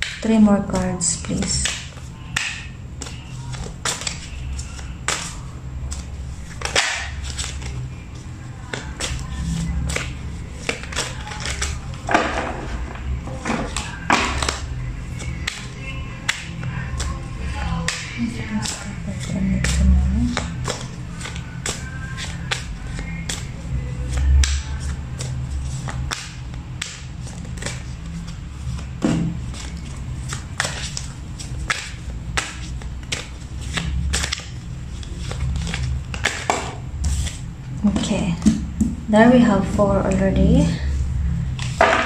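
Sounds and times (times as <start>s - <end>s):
cards shuffled and dealt: 0.0s - 39.0s
low steady drone: 0.0s - 42.0s
soft background music: 0.0s - 42.0s.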